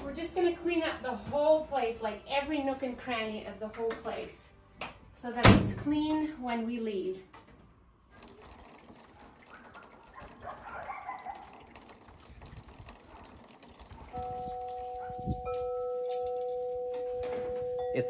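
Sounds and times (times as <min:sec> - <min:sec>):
wind chimes ringing: 0:14.1 - 0:18.0.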